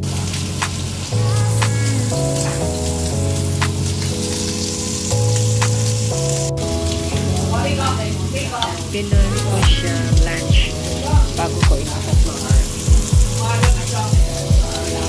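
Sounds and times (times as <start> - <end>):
background music with low notes: 0.0 - 15.0
food sizzling in hot oil: 0.0 - 15.0.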